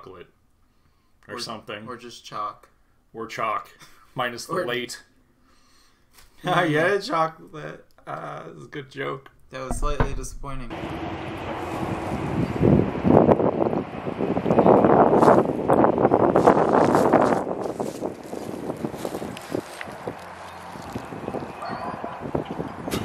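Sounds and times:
wind buffeting microphone: 9.7s - 23.0s.

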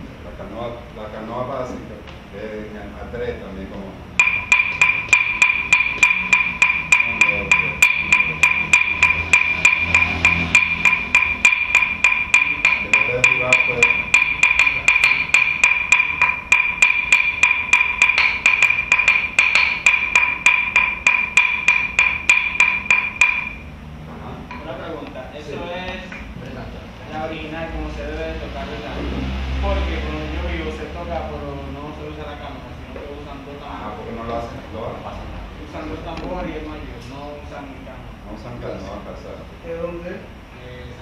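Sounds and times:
hand percussion struck with stick: 4.2s - 23.7s.

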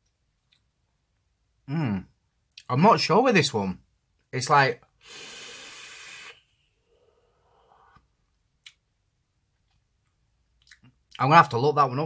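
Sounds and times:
breathy exhale: 5.0s - 8.0s
breathy vape hiss: 5.0s - 8.0s.

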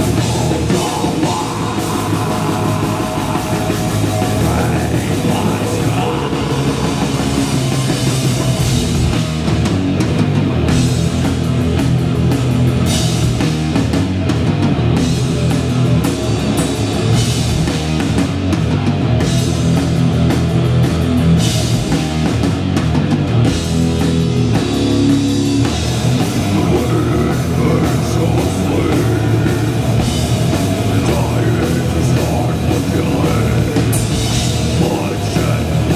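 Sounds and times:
heavy metal band playing: 0.0s - 35.9s.

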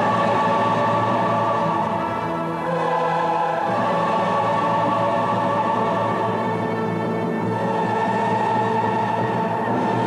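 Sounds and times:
choir singing held chords: 0.0s - 10.0s
symphony orchestra: 0.0s - 10.0s.

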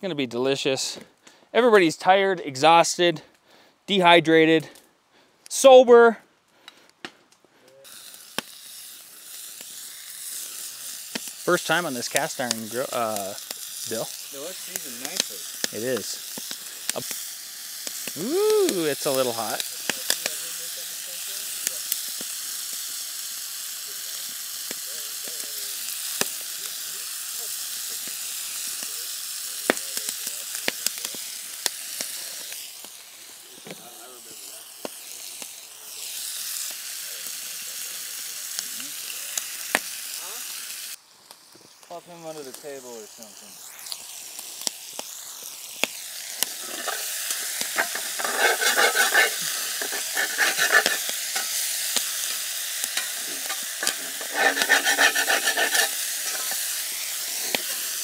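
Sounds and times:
bacon sizzling and popping: 6.6s - 58.0s
bacon stirred in pan: 7.8s - 41.0s, 43.6s - 58.0s.

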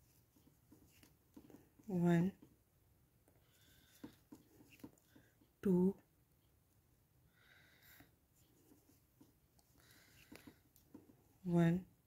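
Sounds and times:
crochet hook scratching yarn: 0.0s - 2.6s, 3.5s - 5.4s, 8.4s - 11.7s.

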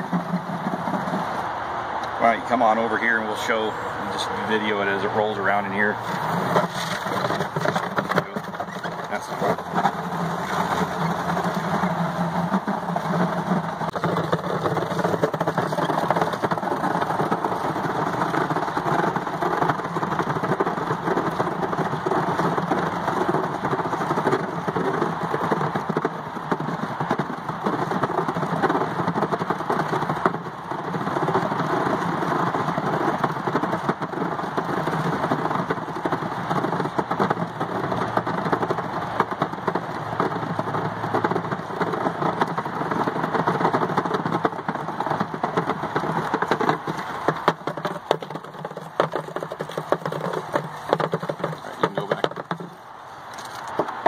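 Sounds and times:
spool rolling in plastic bucket: 0.0s - 54.0s.

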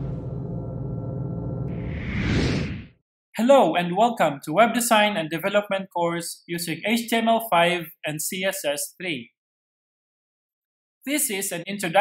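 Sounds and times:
intro music with held tones: 0.0s - 2.0s
whoosh sound effect: 1.7s - 3.0s.

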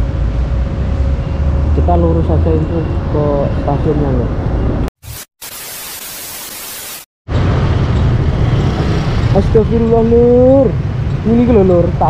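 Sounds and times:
street and wind noise: 0.0s - 4.9s, 7.3s - 12.0s
static hiss: 5.0s - 7.1s.

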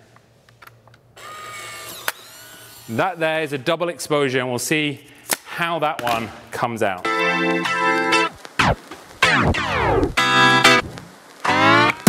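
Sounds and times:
camera motor whirring: 1.2s - 2.9s.

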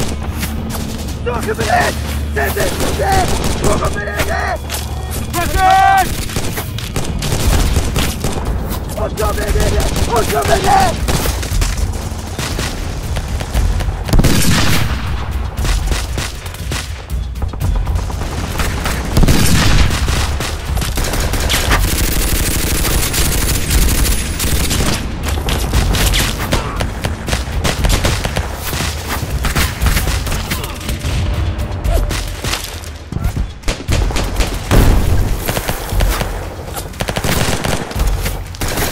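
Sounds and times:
dense gunfire: 2.6s - 4.3s, 6.0s - 16.8s, 17.9s - 31.3s, 33.7s - 38.9s
explosions: 9.3s - 16.6s, 18.2s - 21.9s, 33.6s - 38.9s.

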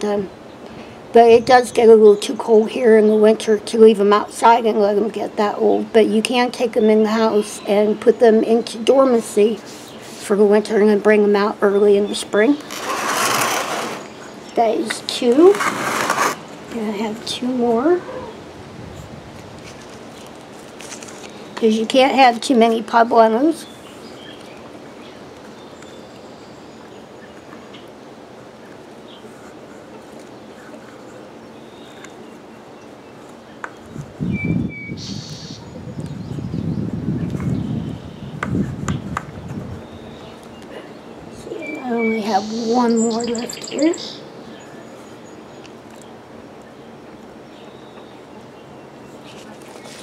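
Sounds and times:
outdoor background hiss: 0.0s - 50.0s
hands rustling potting soil: 12.1s - 18.0s, 19.3s - 24.8s, 49.2s - 50.0s
bird chirping: 23.4s - 27.9s, 30.3s - 50.0s.

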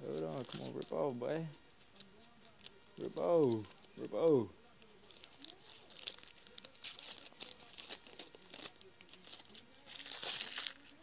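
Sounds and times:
tape crinkling: 0.0s - 1.2s, 1.8s - 11.0s.

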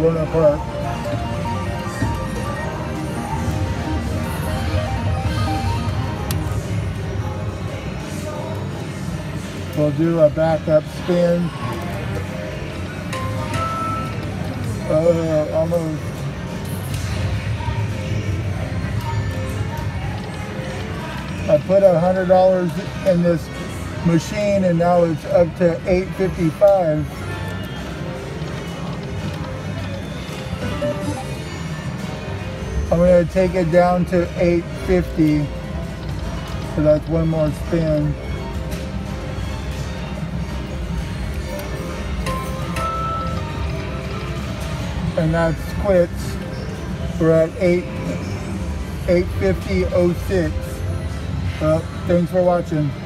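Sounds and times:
electronic game music: 0.0s - 6.3s, 29.0s - 32.0s
low din of machines: 0.0s - 53.0s
slot machine electronic spin tones: 30.2s - 31.7s.

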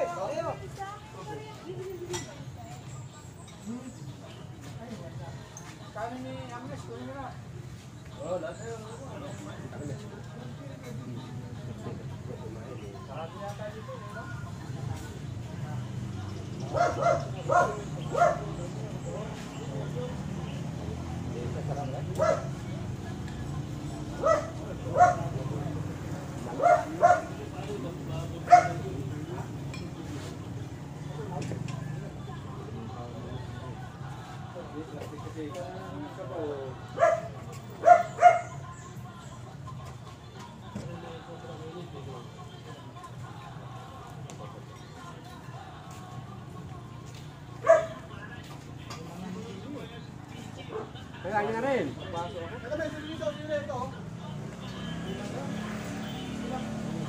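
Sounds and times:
murmur of voices: 0.0s - 57.0s
dog barking: 16.7s - 18.6s, 22.1s - 22.7s, 24.2s - 25.5s, 26.5s - 27.5s, 28.4s - 29.0s, 37.0s - 38.6s, 47.6s - 48.1s.

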